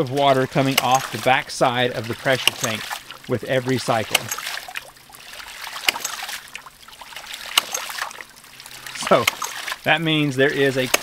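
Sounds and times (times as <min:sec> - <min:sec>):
water hammer knocks: 0:00.0 - 0:04.6, 0:05.7 - 0:06.4, 0:07.4 - 0:08.2, 0:09.0 - 0:09.8, 0:10.6 - 0:11.0
running water splashing: 0:00.0 - 0:11.0.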